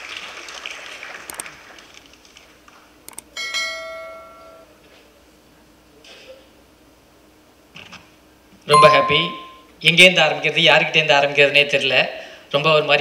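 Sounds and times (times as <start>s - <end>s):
bell-like chime: 8.7s - 9.6s.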